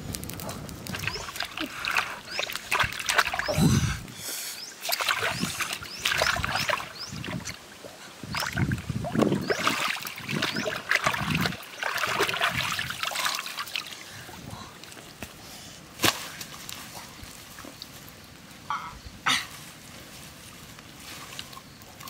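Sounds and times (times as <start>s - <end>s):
water splashing and sloshing: 0.8s - 18.2s
fish slapping water: 0.9s - 3.6s, 4.8s - 14.2s.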